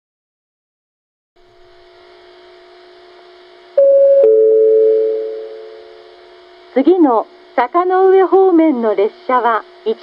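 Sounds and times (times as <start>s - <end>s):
faint speaker hum: 1.4s - 10.0s
two-note chime: 3.8s - 5.7s.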